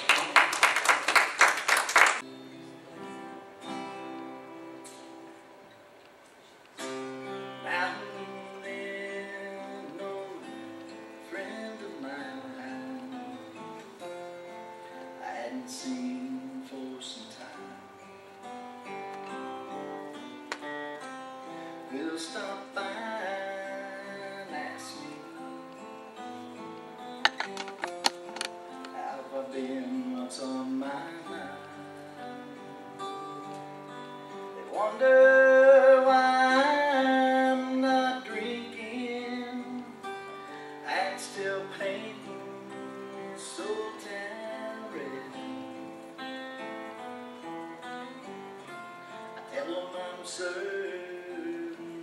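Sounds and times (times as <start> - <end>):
acoustic guitar strumming: 1.8 - 52.0
man singing: 7.4 - 13.9, 15.0 - 17.9, 21.8 - 26.2, 28.8 - 33.8, 34.5 - 46.1, 49.1 - 52.0.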